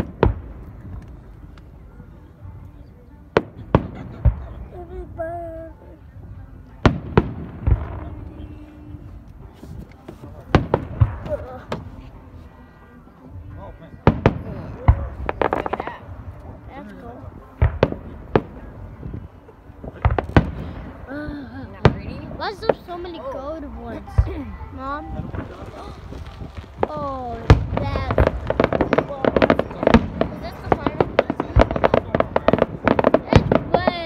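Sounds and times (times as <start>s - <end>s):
fireworks bursting with bangs: 0.0s - 1.7s, 3.3s - 5.2s, 6.6s - 34.0s.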